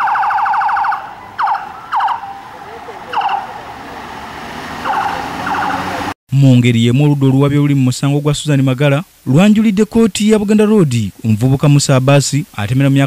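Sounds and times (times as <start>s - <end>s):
police siren yelp and whoops: 0.0s - 3.9s, 4.8s - 6.1s.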